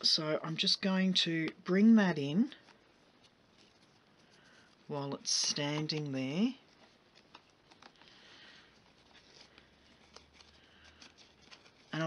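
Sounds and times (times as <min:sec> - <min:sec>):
ribbon rustling and clicking: 0:02.5 - 0:12.0.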